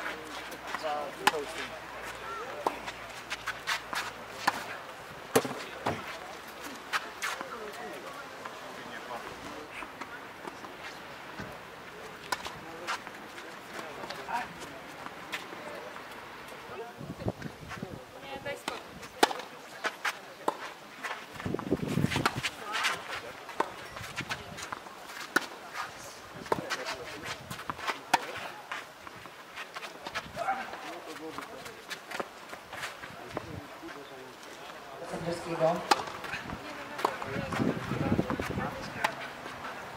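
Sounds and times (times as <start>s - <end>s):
racket hitting tennis ball: 0.7s - 1.6s, 2.6s - 6.2s, 18.6s - 19.6s, 35.8s - 39.3s
footsteps on clay: 19.8s - 34.8s.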